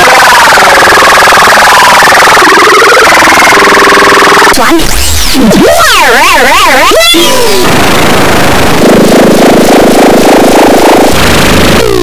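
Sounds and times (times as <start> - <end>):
distorted buzzing warble: 0.0 - 12.0.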